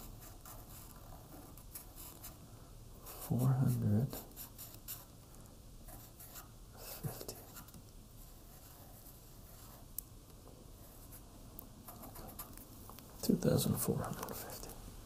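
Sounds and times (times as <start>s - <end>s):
marker scratching on paper: 0.0s - 2.4s, 3.0s - 5.1s, 5.9s - 9.8s, 10.8s - 11.2s, 11.8s - 12.6s.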